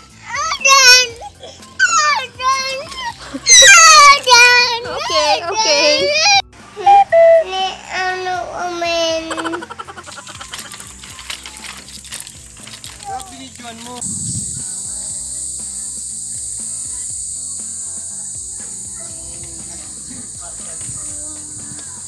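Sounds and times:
high-pitched insect buzzing: 0.0s - 6.4s, 7.7s - 22.0s
quiet background music: 0.0s - 22.0s.

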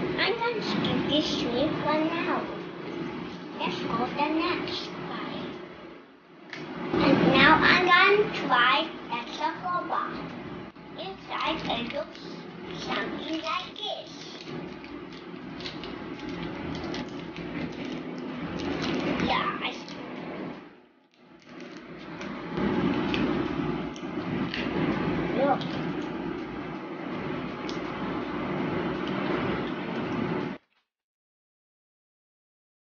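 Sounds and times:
steady background noise: 0.0s - 30.6s.

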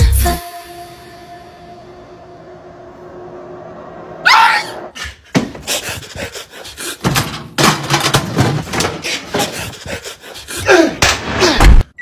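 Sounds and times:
loud high yelp: 4.2s - 4.9s
sharp knocks and clatters: 7.0s - 9.8s.

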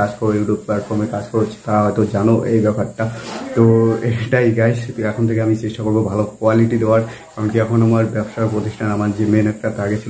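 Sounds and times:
breathy hiss: 0.0s - 10.0s
man talking: 0.0s - 10.0s.

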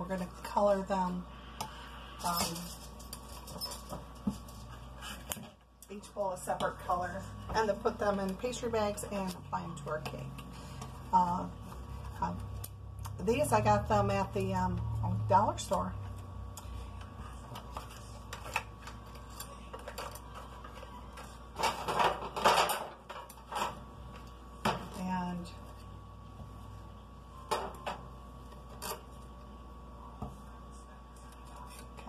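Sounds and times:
kitchen items clicking and knocking: 19.7s - 23.8s.

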